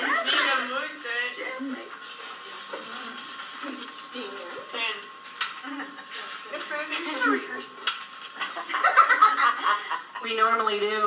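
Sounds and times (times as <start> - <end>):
several people talking indistinctly: 0.0 - 8.4.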